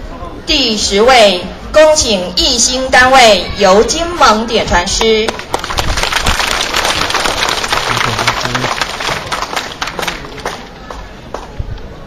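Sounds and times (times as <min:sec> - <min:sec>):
crowd applauding: 0:05.3 - 0:11.5.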